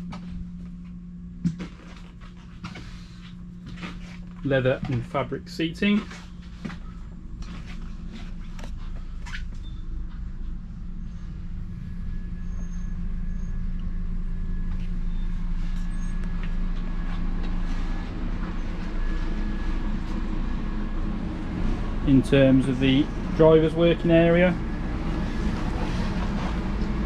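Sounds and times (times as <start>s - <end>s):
coach mechanical hum: 0.0s - 27.0s
droning tone: 0.0s - 27.0s.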